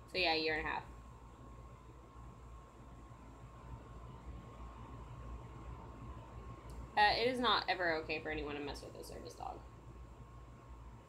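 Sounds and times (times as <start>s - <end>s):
faint thin whine: 0.0s - 11.0s
steady low hum: 0.0s - 11.0s.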